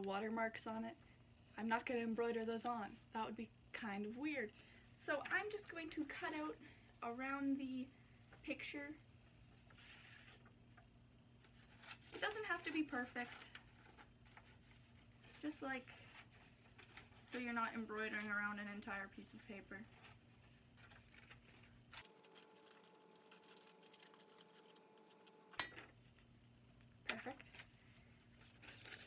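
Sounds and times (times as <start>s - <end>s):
paper rustling: 11.4s - 17.4s, 19.3s - 25.6s, 28.3s - 29.0s
scissors snipping paper: 22.0s - 25.7s.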